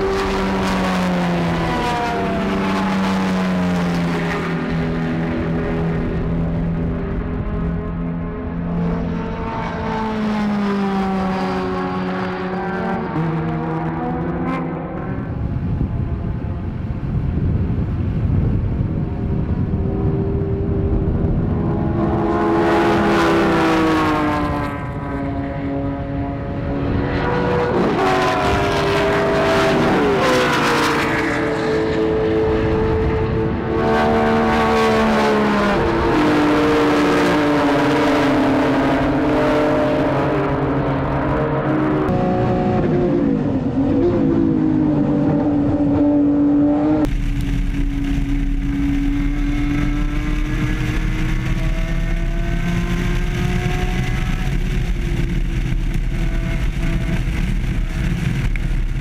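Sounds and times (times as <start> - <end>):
heavy wind rumble on camera: 0.0 - 59.0
race car engines revving: 0.0 - 59.0.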